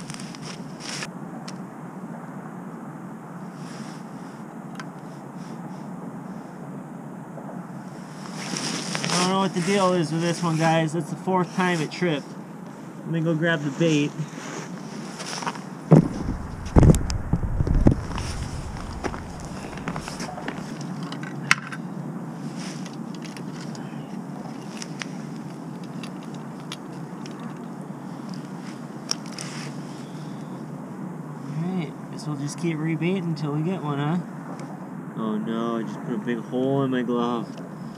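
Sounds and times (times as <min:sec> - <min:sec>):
outdoor background noise: 0:00.0 - 0:37.9
heavy thumps and knocks: 0:15.9 - 0:20.6.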